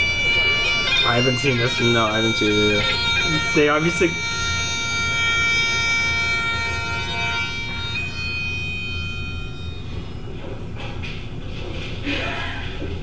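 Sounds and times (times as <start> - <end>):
bagpipes playing long notes: 0.0 - 11.2.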